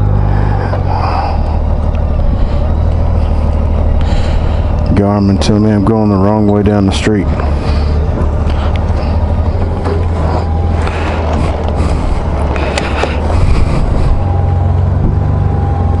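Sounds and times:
motorcycle engine idling: 0.0s - 16.0s.

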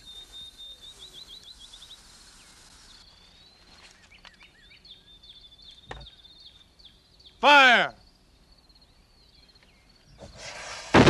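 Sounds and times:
small bird chirping: 0.0s - 10.4s
faint open-air ambience: 0.0s - 11.0s.

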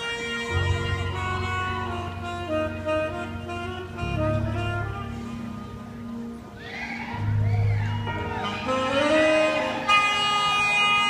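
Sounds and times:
live band playing slow intro: 0.0s - 11.0s
audience cheers or whistles: 6.5s - 11.0s.

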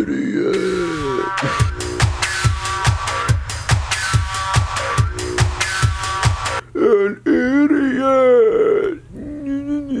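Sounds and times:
man's wordless vocal sounds: 0.0s - 1.8s, 6.6s - 10.0s.

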